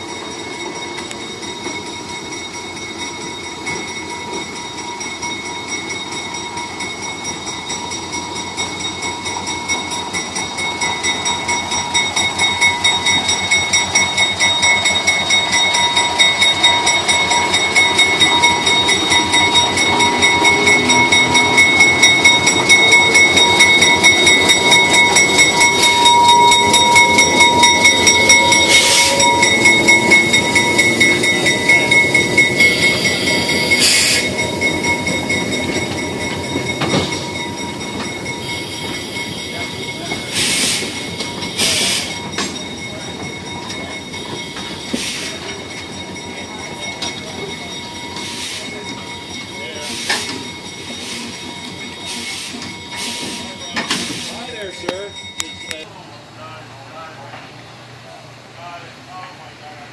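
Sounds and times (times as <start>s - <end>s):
locomotive engine rumble: 0.0s - 59.9s
wheels clicking over rail joints: 0.1s - 55.8s
high-pitched wheel squeal: 17.6s - 42.4s.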